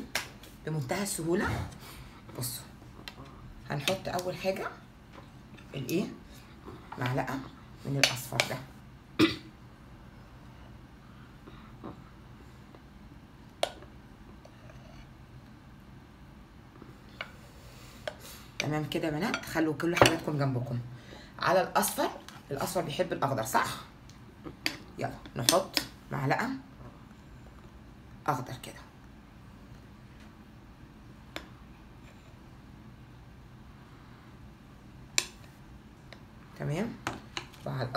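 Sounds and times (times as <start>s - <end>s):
faint steady hum: 0.0s - 37.9s.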